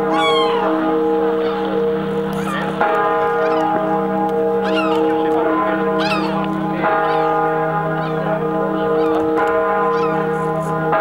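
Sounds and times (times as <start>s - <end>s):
gulls calling: 0.0s - 4.0s, 4.6s - 8.3s
large bell tolling: 0.0s - 11.0s.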